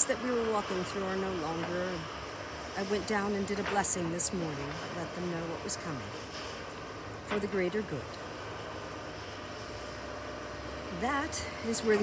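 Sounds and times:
distant excavator engine rumbling: 0.0 - 12.0
faint steady whine: 0.0 - 12.0.

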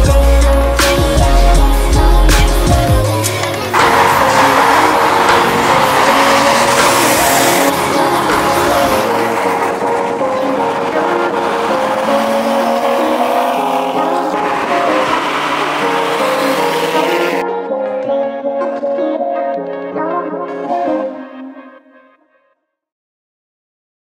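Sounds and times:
background music: 0.0 - 22.4
sports car engines at speed: 0.3 - 17.4.

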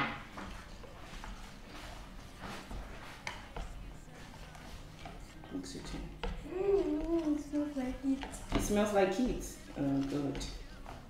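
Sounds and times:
whisk stirring batter: 0.4 - 11.0
whisk tapping plastic bowl: 3.0 - 11.0.

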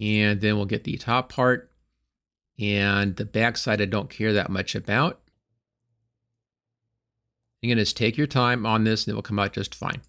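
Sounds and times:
person speaking: 7.6 - 10.0.

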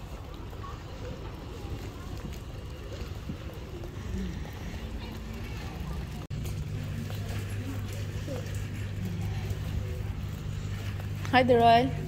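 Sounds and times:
footsteps: 0.0 - 12.0
stroller wheels rolling on tarmac: 0.0 - 12.0.

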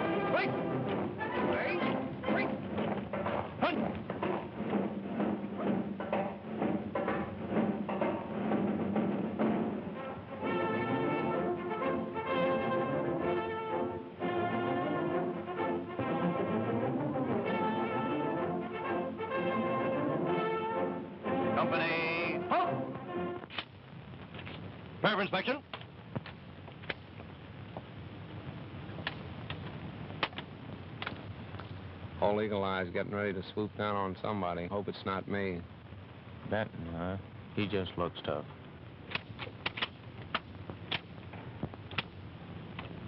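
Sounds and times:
steady drum beat: 0.0 - 11.3
brass band march music: 0.0 - 23.6.

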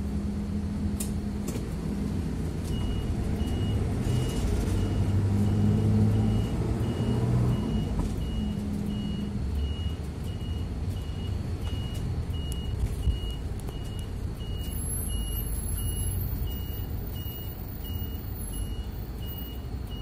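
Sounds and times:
engine and road noise rumble: 0.0 - 20.0
high electronic beeps: 2.7 - 20.0.

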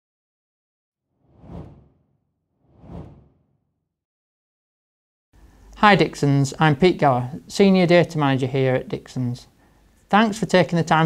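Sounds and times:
whoosh transition effect: 1.2 - 2.0, 2.6 - 3.5.

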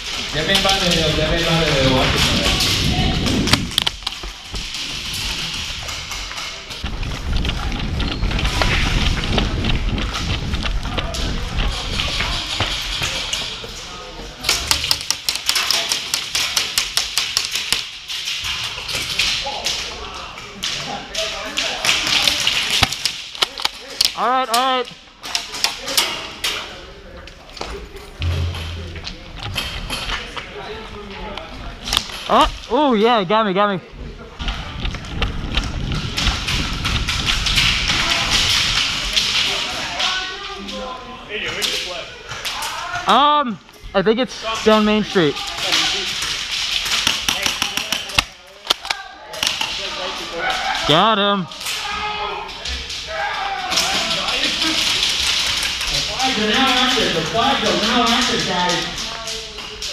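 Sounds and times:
pellets hitting plywood walls: 45.4 - 48.2.

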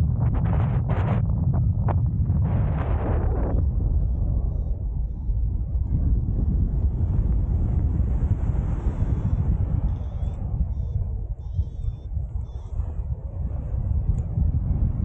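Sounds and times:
wind buffeting microphone: 0.0 - 15.0
faint high wavering chirps: 9.2 - 12.9.

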